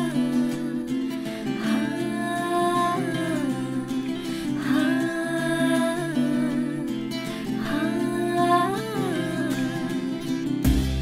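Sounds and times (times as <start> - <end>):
steady music backing: 10.6 - 11.0.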